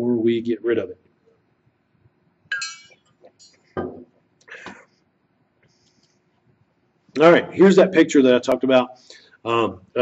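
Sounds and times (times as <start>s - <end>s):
metal tumbler clinking: 2.5s - 3.6s
breath: 4.5s - 6.4s, 9.0s - 9.4s.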